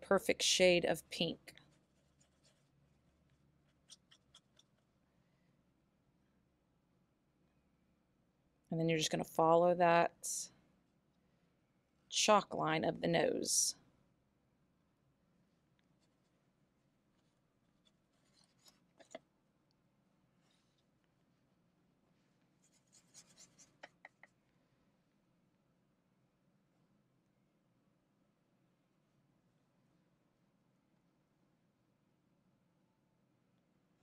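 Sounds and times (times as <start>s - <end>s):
paintbrush tapping and scraping: 1.6s - 4.9s, 17.2s - 19.3s, 22.6s - 24.4s.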